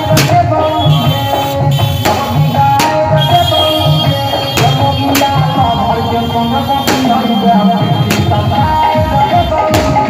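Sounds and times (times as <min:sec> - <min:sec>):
deep bass beats: 0:00.0 - 0:10.0
loud dance music: 0:00.0 - 0:10.0
sharp percussion strikes: 0:00.0 - 0:10.0.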